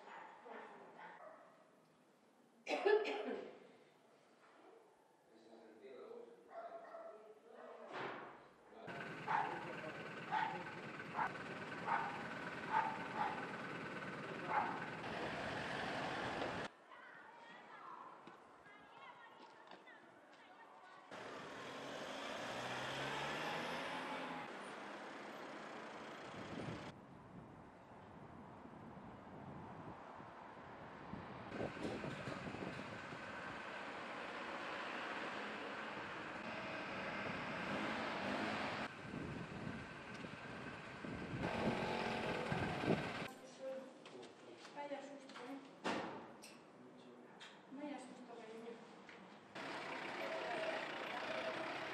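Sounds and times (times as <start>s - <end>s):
motor vehicle driving past: 8.9s - 16.7s, 21.1s - 26.9s, 31.0s - 43.3s, 49.5s - 51.9s
street traffic noise: 8.9s - 16.7s, 21.1s - 43.3s, 48.4s - 51.9s.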